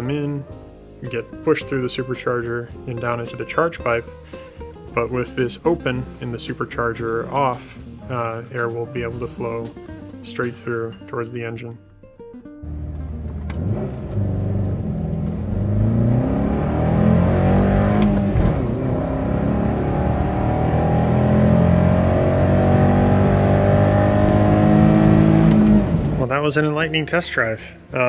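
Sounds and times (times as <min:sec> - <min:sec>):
car engine accelerating: 0:12.6 - 0:26.4.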